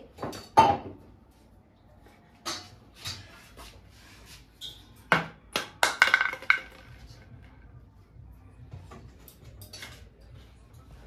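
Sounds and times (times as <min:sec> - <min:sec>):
knocks and clinks of objects: 0:04.6 - 0:07.3.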